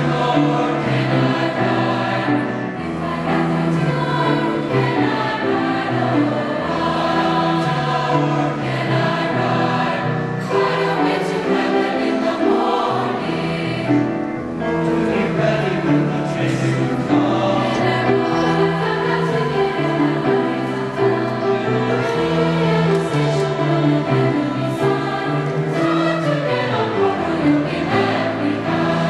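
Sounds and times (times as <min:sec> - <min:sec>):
choir singing in parts: 0:00.0 - 0:29.0
grand piano: 0:00.0 - 0:29.0.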